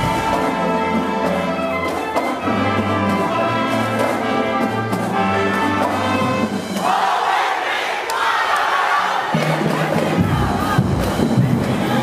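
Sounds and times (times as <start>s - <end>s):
crowd shouting and cheering: 0.0s - 2.0s, 6.1s - 12.0s
marching band music: 0.0s - 12.0s.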